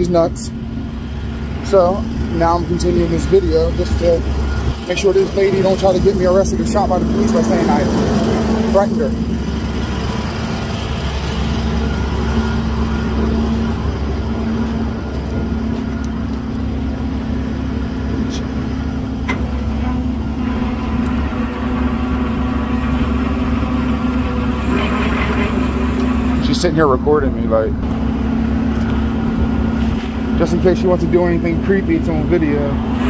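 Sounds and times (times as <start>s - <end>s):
truck engine idling: 0.0s - 33.0s.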